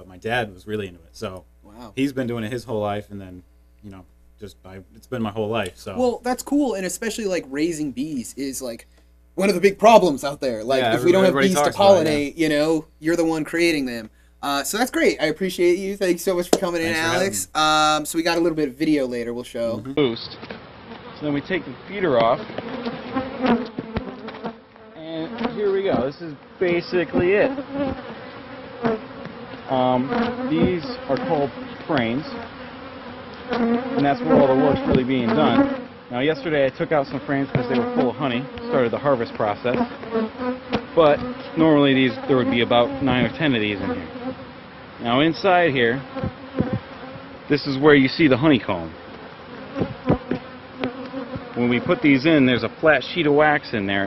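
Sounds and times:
honeybees buzzing: 9.4 - 54.0
brief thumps: 46.2 - 47.3, 49.8 - 52.0
sharp knocks: 46.2 - 47.3, 49.8 - 52.0.

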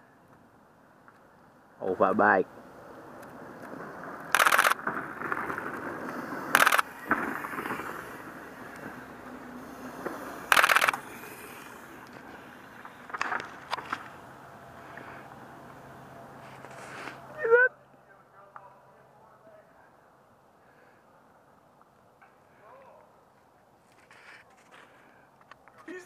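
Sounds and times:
bike tyres crunching dry leaves: 2.6 - 17.4
loud rattling bursts: 4.3 - 8.3, 10.5 - 11.6.

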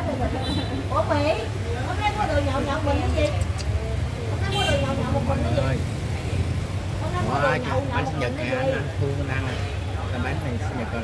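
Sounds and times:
people talking: 0.0 - 6.4, 7.1 - 11.0.

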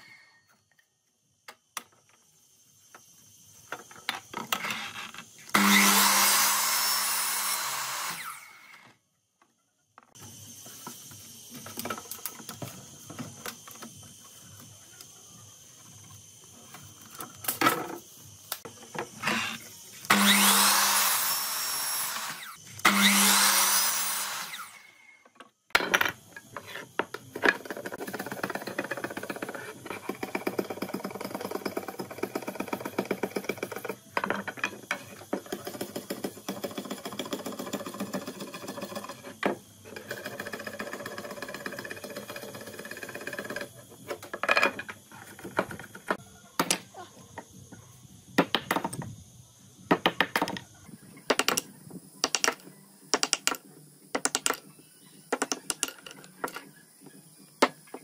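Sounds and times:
miter saw cutting wood: 4.8 - 8.9, 19.1 - 25.1.

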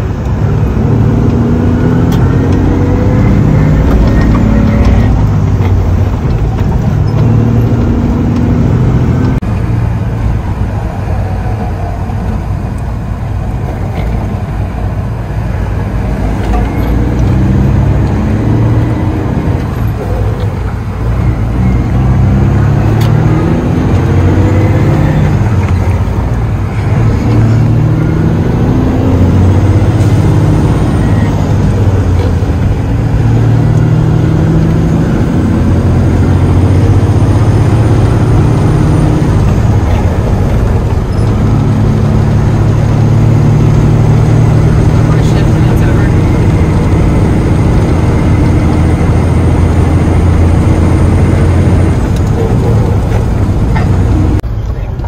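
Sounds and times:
diesel truck engine shifting gears: 0.0 - 55.0
road noise: 0.0 - 55.0.

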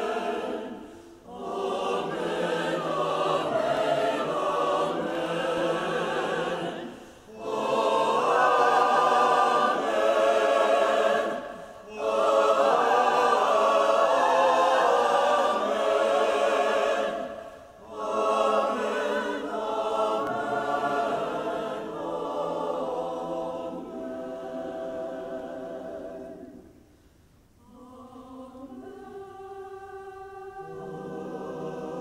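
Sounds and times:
church choir singing: 0.0 - 26.9, 27.6 - 32.0.

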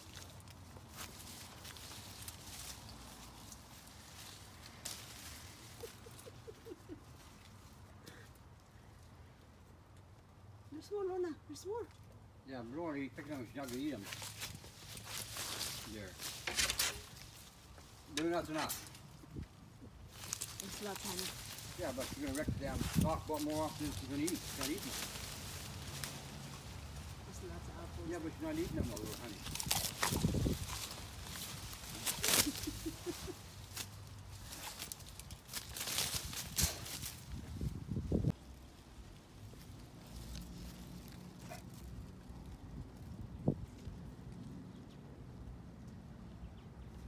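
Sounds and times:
sharp crackles of branches: 0.0 - 10.7, 13.1 - 44.7
leaves rustling and scuffling: 0.0 - 44.7.

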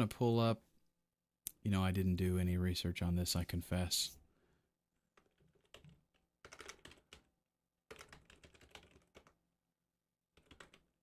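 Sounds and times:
faint keyboard typing: 5.0 - 9.5, 10.3 - 11.0.

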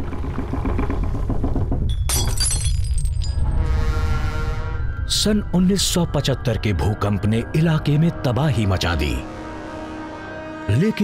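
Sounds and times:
glass shattering: 1.9 - 3.6.

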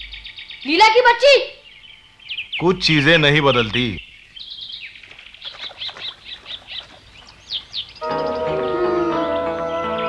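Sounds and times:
birds chirping: 0.0 - 10.0
soft held chords music: 8.0 - 10.0.

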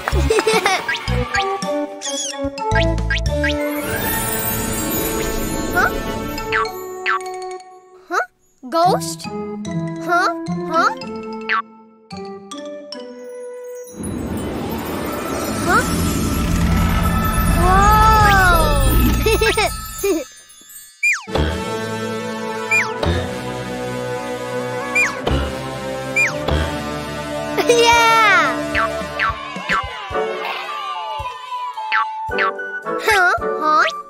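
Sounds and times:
light cartoon background music: 0.0 - 34.0
high squeaky cartoon squeak: 1.3 - 4.2, 21.0 - 21.4, 22.7 - 23.0, 24.9 - 25.2, 26.2 - 26.4
cartoon character vocal call: 24.9 - 25.2.

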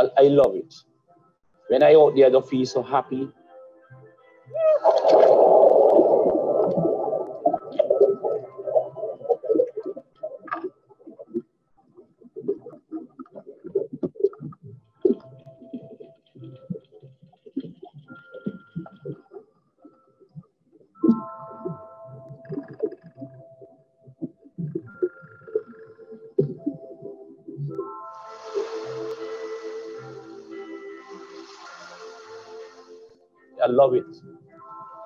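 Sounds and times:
muffled underwater gurgling: 4.6 - 16.9
loud splash into water: 4.8 - 6.9.

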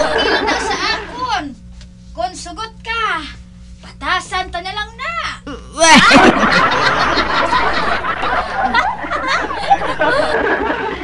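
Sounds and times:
people laughing: 0.0 - 1.2, 5.8 - 11.0.

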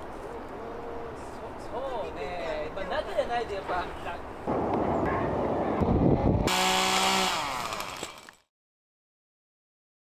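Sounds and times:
chainsaw running: 6.4 - 8.4.

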